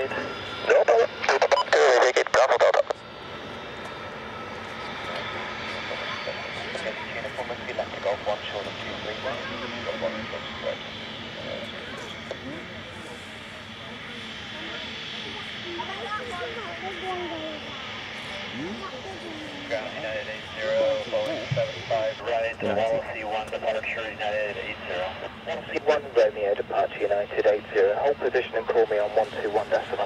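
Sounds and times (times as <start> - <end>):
radio speech: 0.0 - 3.0, 5.8 - 11.7, 19.7 - 30.0
jet engines whining: 0.0 - 30.0.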